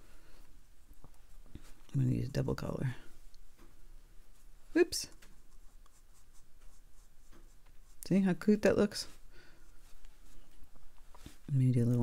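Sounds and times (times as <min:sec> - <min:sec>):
brush dabbing on paper: 0:03.4 - 0:11.4.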